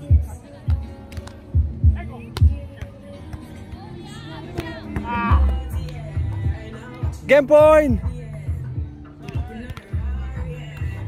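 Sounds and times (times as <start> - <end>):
hands slapping volleyball: 1.1 - 1.4, 4.5 - 6.4, 9.2 - 9.9.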